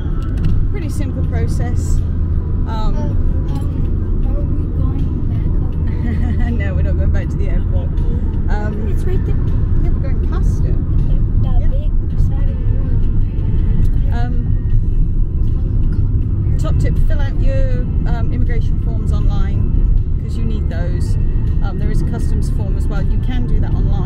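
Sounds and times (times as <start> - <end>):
car road and engine rumble: 0.0 - 24.0
person talking: 2.7 - 13.1.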